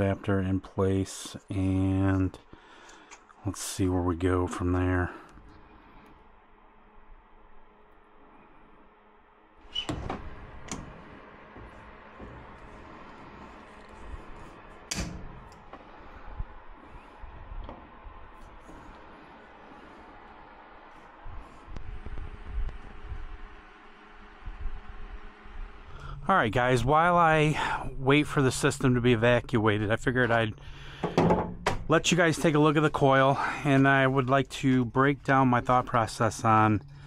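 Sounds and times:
faint steady hum: 0.0 - 37.0
sharp knocks: 31.0 - 31.9.

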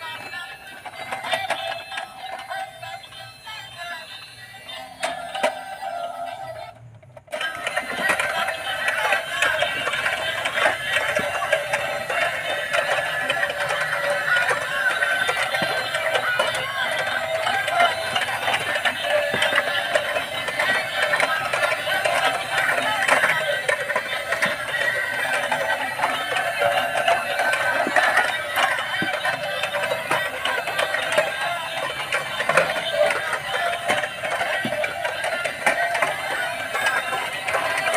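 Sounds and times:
tinny electronic toy music: 0.0 - 37.9.

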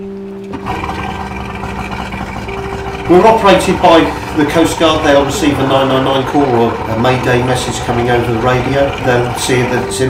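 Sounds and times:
outboard motors running: 0.0 - 10.0.

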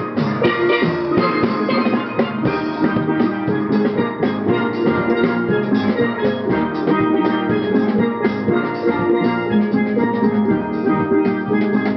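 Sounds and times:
drums keeping time: 0.0 - 11.9
steel orchestra playing: 0.0 - 11.9.

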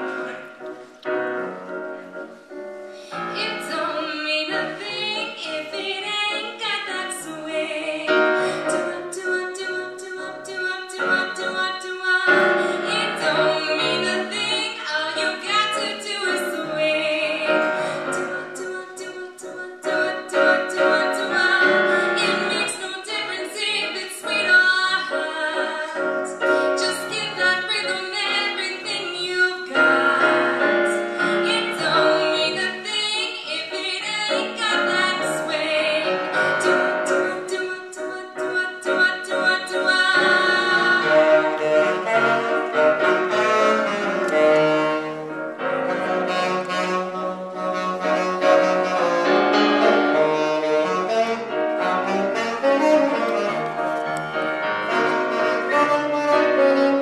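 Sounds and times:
piano: 0.0 - 57.0
saxophone: 0.0 - 57.0
woman singing: 3.4 - 43.8.

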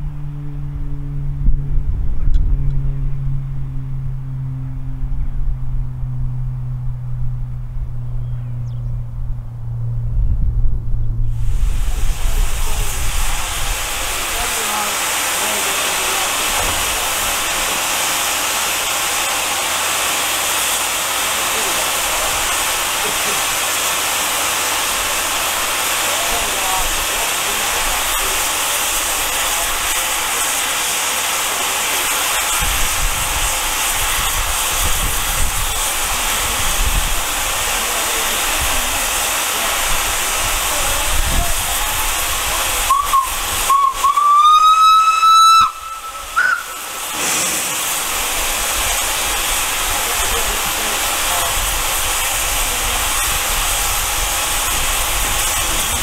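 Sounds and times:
steady steam hiss: 11.1 - 56.0
steam locomotive whistle: 41.8 - 48.1.

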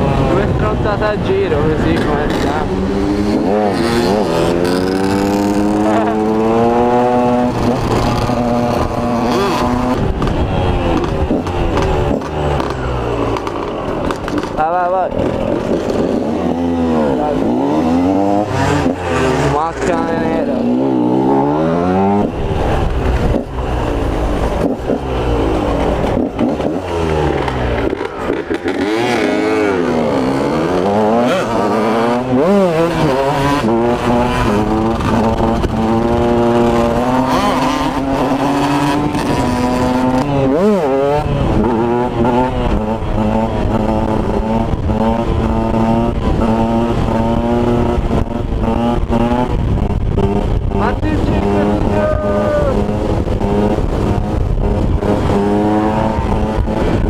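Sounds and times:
motorcycle engine revving: 0.0 - 57.0
wind rumble on microphone: 0.0 - 57.0.

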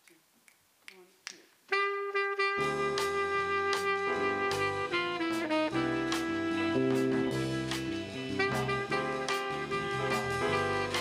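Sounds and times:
jazz band playing: 1.7 - 11.0.

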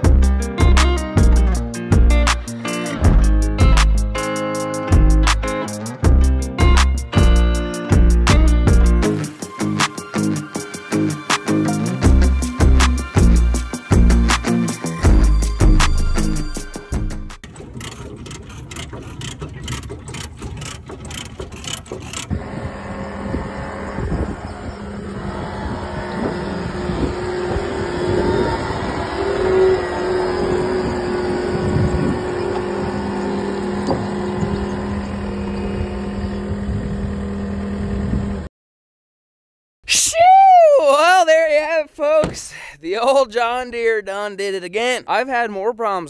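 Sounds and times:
diesel engine running: 0.0 - 4.3, 4.9 - 38.5.

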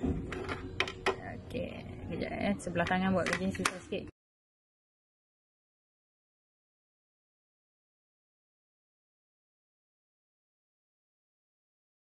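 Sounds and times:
plastic clicks and knocks: 0.0 - 1.2, 2.8 - 3.8.

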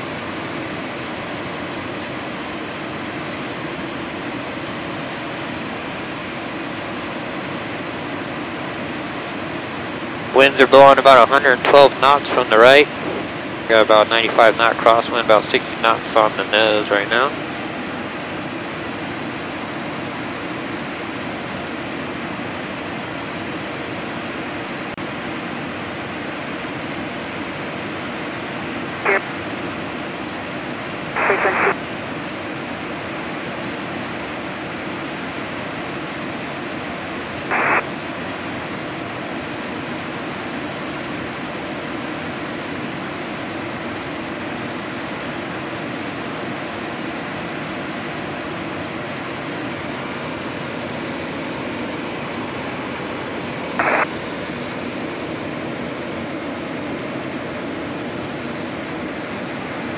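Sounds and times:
jet cockpit airflow and engine hiss: 0.0 - 59.9
radio audio bursts: 10.5 - 17.3, 29.0 - 29.4, 31.1 - 31.8, 37.5 - 37.9, 53.8 - 54.2.

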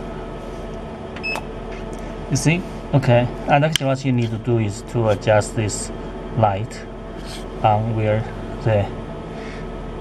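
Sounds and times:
laser cutter humming: 0.0 - 10.0.

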